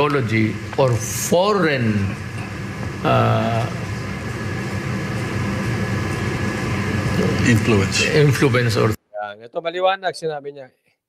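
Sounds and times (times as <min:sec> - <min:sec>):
low background hum: 0:00.0 - 0:10.7
man saying uh: 0:03.0 - 0:03.8.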